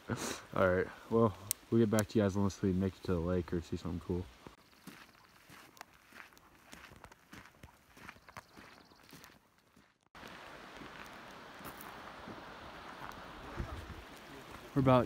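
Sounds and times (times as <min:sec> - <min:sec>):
footsteps on gravel: 0:04.4 - 0:15.0.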